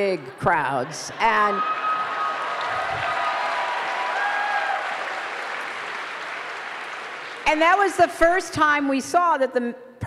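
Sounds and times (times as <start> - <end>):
audience applauding: 1.1 - 8.0.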